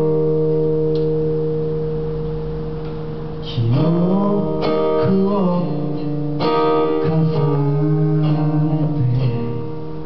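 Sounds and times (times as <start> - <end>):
guitar chord ringing out: 0.0 - 10.0.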